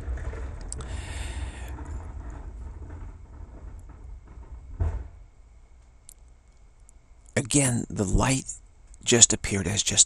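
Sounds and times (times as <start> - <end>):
low rumble: 0.0 - 7.2
dull thump: 1.7 - 5.6.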